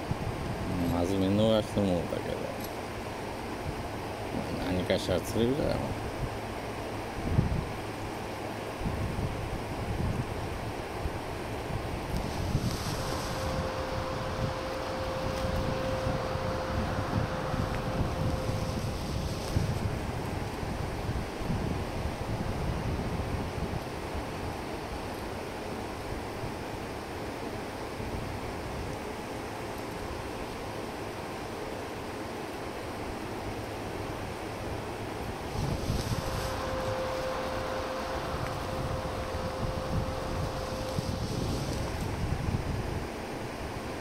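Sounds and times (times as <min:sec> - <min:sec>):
wind buffeting microphone: 0:00.0 - 0:02.2, 0:03.3 - 0:25.1, 0:34.7 - 0:44.0
steady outdoor hiss: 0:00.0 - 0:44.0
faint steady tone: 0:12.1 - 0:20.2, 0:29.0 - 0:42.1.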